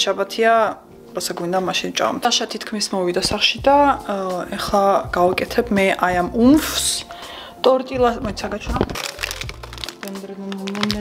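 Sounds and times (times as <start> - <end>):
frozen plastic bag crinkling: 8.6 - 11.0.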